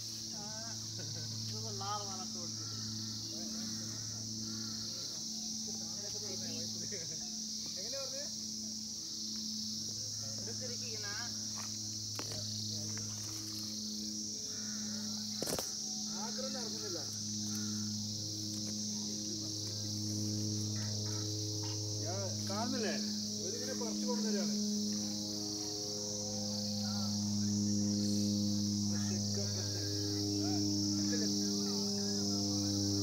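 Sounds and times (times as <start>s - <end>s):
crickets chirping: 0.0s - 33.0s
low pulsing hum: 0.0s - 33.0s.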